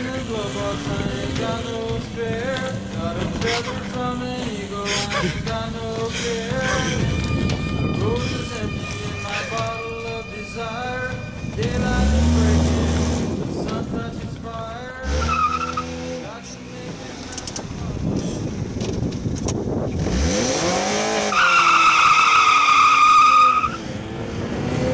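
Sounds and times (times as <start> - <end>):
car engine revving: 0.0 - 24.9
high-pitched tyre squeal: 3.4 - 4.0, 4.8 - 5.4, 6.1 - 12.8, 15.0 - 16.2, 20.4 - 24.0.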